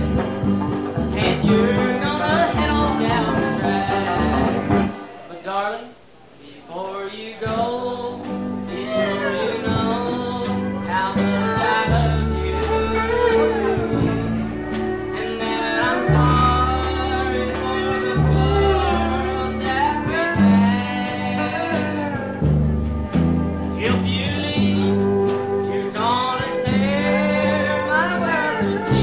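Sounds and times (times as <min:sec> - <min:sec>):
bass line: 0:00.0 - 0:05.1, 0:07.6 - 0:29.0
country band playing live: 0:00.0 - 0:05.5, 0:07.4 - 0:29.0
electric guitars: 0:00.0 - 0:05.5, 0:07.4 - 0:29.0.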